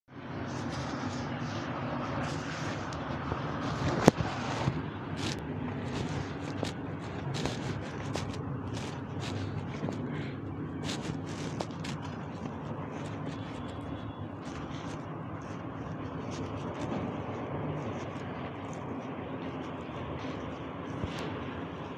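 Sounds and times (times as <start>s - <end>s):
steady low rumble: 0.2s - 21.9s.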